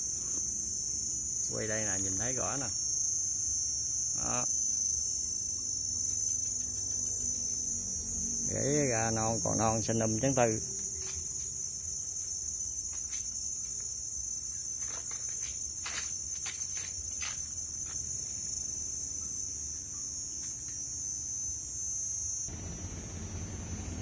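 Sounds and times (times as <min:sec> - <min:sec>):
insects chirring: 0:00.0 - 0:24.0.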